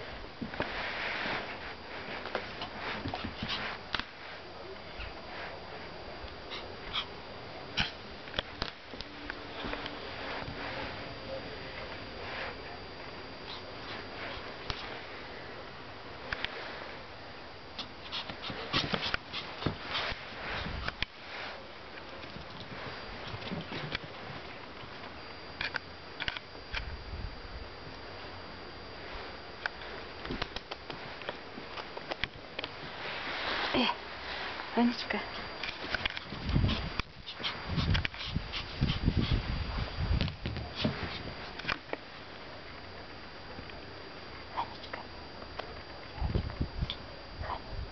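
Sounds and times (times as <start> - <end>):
small dog yapping: 6.5 - 7.1, 7.8 - 8.0.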